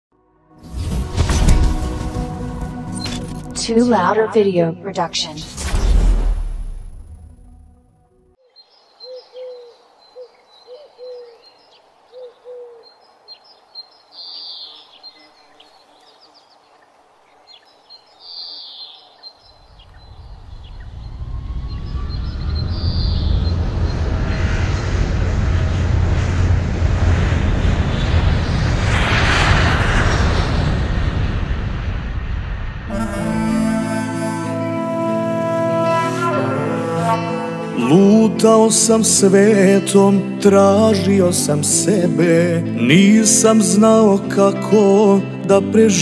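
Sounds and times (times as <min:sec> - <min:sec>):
birds chirping: 0:08.4 - 0:24.7
jet airliner taking off: 0:19.6 - 0:44.7.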